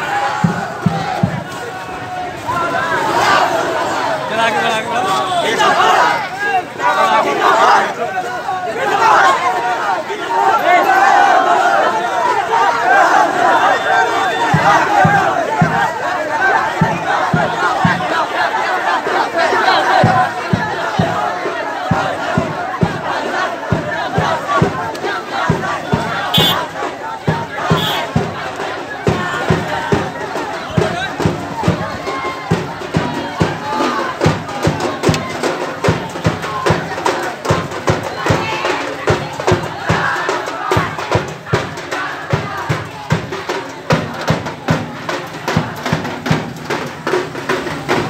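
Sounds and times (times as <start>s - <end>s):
crowd of men shouting and chanting: 0.0s - 48.0s.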